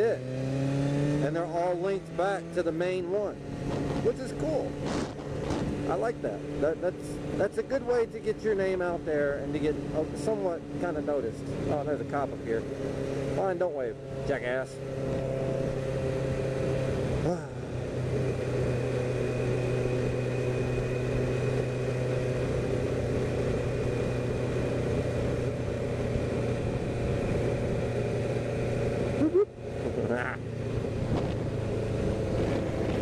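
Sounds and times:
motorcycle engine running: 0.0s - 33.0s
wind and road noise: 0.0s - 33.0s.

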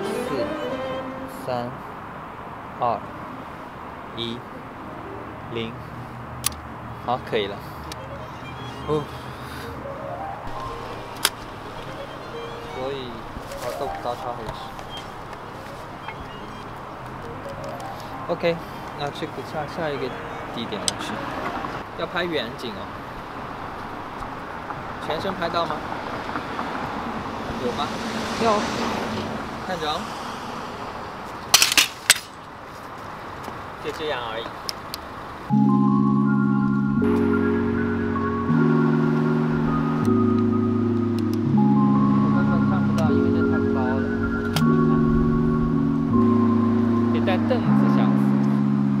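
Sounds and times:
low street hum: 0.0s - 49.0s.

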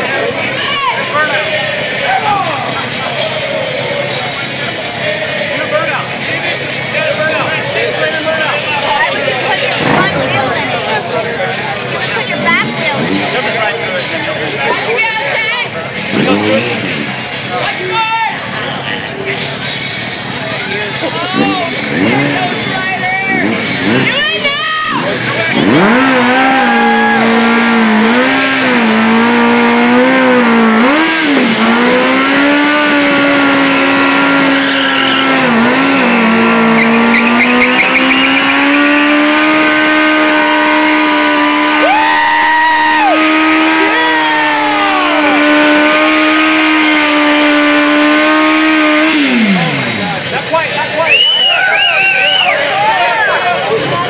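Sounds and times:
motorcycle engine at high revs: 9.0s - 17.7s, 20.9s - 50.8s.

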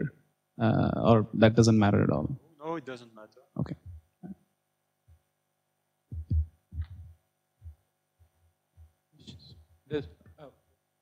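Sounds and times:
microphone handling thumps: 6.1s - 9.6s.

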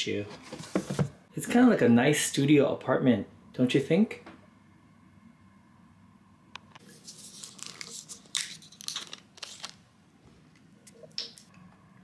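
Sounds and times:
plastic bottle crinkling: 7.2s - 9.8s.

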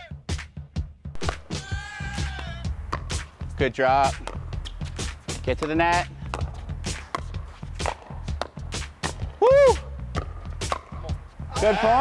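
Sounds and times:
ball bouncing on court: 1.1s - 1.6s, 2.2s - 3.3s, 4.0s - 4.8s, 5.4s - 9.4s, 10.1s - 11.2s
person whooping: 1.5s - 2.6s, 9.4s - 9.9s, 11.5s - 12.0s
paddles striking plastic ball: 4.2s - 4.4s, 5.6s - 9.2s, 10.2s - 11.0s.

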